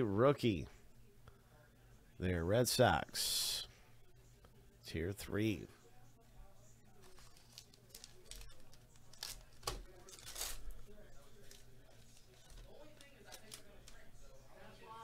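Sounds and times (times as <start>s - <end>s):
wrapper tearing and rustling: 7.0s - 10.8s
cards being handled: 7.0s - 14.0s.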